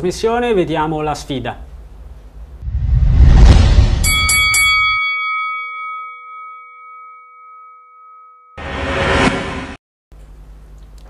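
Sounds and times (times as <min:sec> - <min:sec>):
low rumble: 0:02.6 - 0:04.8
boxing bell ringing: 0:04.0 - 0:08.6.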